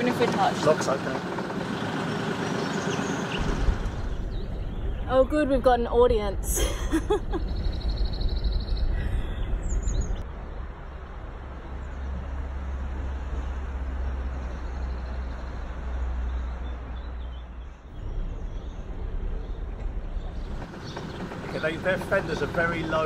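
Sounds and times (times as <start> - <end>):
boat engine rumbling: 0.0 - 23.0.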